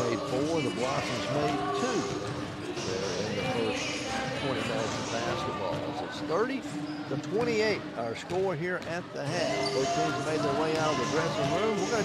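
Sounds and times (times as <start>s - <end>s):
overlapping voices chattering: 0.0s - 12.0s
basketballs bouncing on hardwood: 7.4s - 9.0s, 10.6s - 12.0s.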